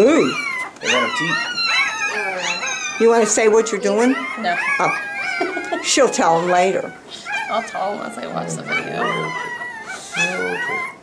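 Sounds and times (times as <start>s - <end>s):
puppy whining: 0.0s - 11.0s.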